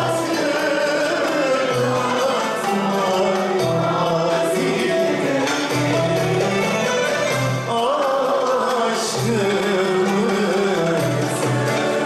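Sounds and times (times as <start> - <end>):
instrumental ensemble: 0.0 - 12.0
man singing melismatic melody: 0.0 - 12.0
violin: 0.0 - 12.0.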